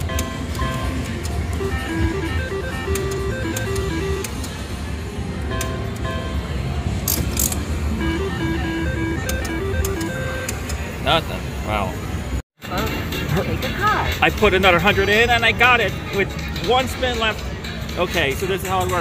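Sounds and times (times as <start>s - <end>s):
slot machine jingles: 0.0s - 4.3s
scattered clicks: 2.7s - 4.6s, 9.2s - 10.8s.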